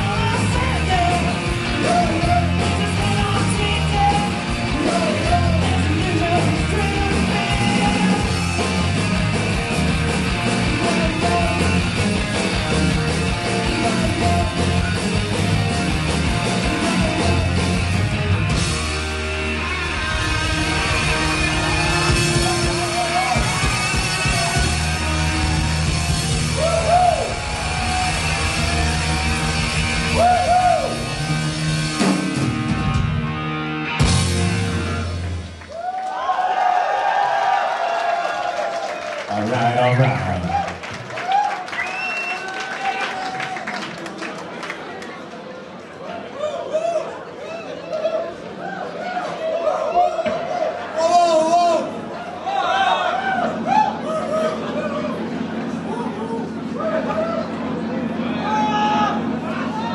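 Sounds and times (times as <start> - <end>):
bending guitar or vocal line: 0.0 - 9.0
rock band playing live: 0.0 - 35.7.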